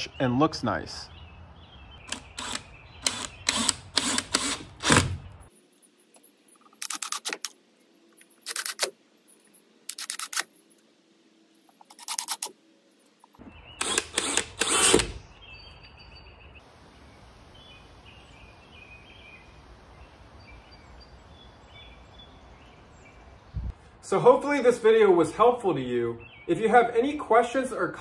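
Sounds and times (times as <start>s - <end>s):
outdoor background noise: 0.0s - 28.0s
cordless drill driving screws: 2.1s - 5.3s, 13.8s - 15.2s
faint bird chirps: 15.2s - 23.7s.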